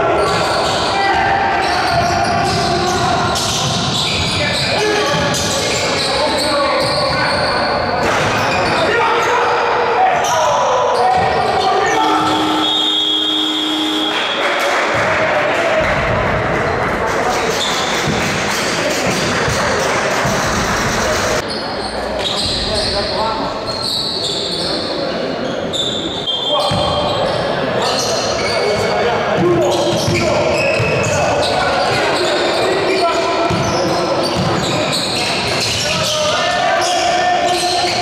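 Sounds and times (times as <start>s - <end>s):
players calling out: 0.0s - 16.1s
referee's whistle: 11.9s - 14.4s.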